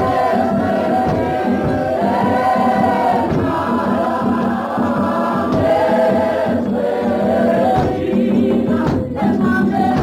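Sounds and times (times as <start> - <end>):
choir singing long notes: 0.0 - 10.0.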